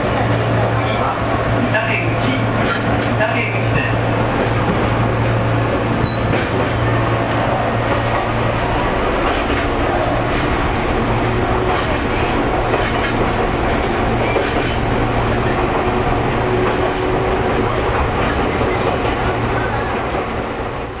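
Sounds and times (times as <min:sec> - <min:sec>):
train running hum: 0:00.0 - 0:21.0.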